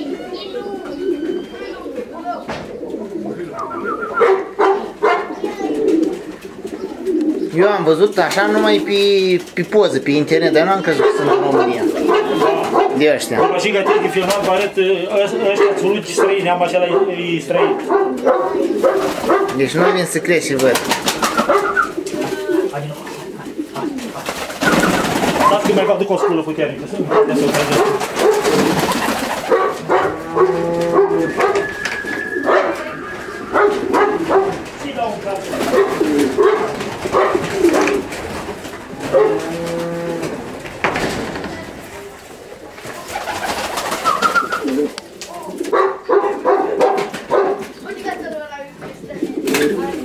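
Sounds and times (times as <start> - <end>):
pigeons cooing: 0.0 - 40.8, 41.5 - 50.0
wing flapping: 14.1 - 14.8, 18.6 - 19.8, 20.4 - 26.1, 27.3 - 45.8.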